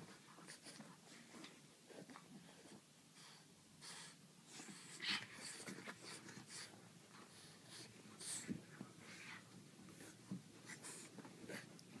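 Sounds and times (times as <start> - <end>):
dogs breathing in puffs: 2.5 - 11.8.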